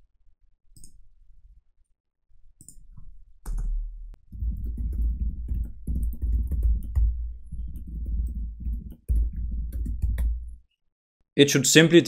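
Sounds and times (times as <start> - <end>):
fast typing on computer keyboard: 4.3 - 10.6.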